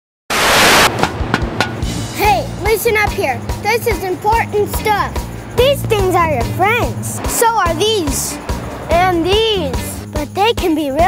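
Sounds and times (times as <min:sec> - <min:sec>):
tv static hiss: 0:00.3 - 0:00.9
low bass: 0:00.4 - 0:10.4
sharp drum hits: 0:00.6 - 0:03.1
background music: 0:00.9 - 0:11.0.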